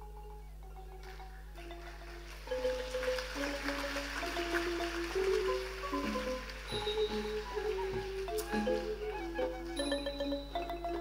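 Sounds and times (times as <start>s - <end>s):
classical ensemble music: 1.0s - 11.0s.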